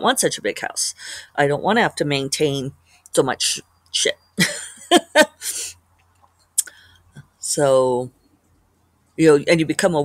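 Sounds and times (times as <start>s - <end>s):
woman laughing: 4.4s - 5.7s.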